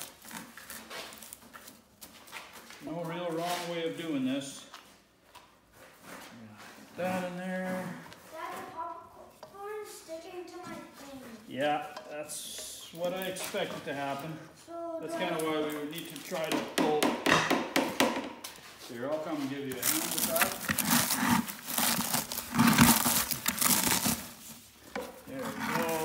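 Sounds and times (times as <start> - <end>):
spoon stirring popcorn in plastic pail: 19.7 - 26.0
spatula scraping a pan: 20.0 - 26.0.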